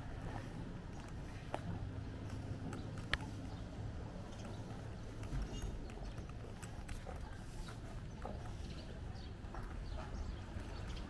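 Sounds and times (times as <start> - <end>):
low rumble of street noise: 0.0 - 11.0.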